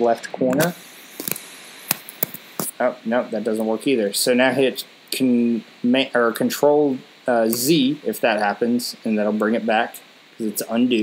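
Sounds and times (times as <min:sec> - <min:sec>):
keyboard and mouse clicks: 0:00.5 - 0:02.7.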